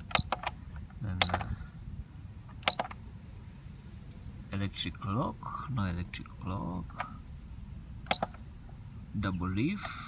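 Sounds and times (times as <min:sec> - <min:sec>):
keypad button click: 0:01.2 - 0:01.5, 0:02.6 - 0:03.0, 0:08.1 - 0:08.4.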